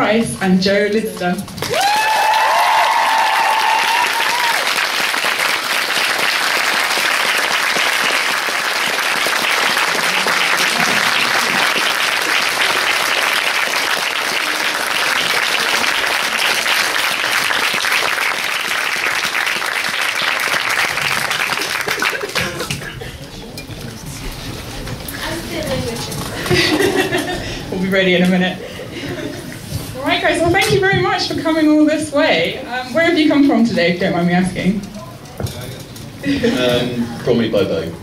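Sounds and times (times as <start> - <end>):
high whooping cheer: 1.6 - 5.2
audience applauding: 1.6 - 23.5.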